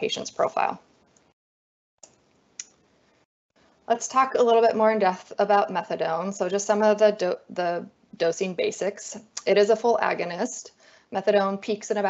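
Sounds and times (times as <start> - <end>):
woman speaking: 0.0 - 0.8, 3.9 - 12.0.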